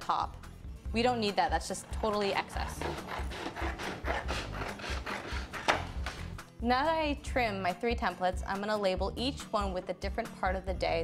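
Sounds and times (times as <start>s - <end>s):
scissors cutting cardstock: 2.0s - 6.2s.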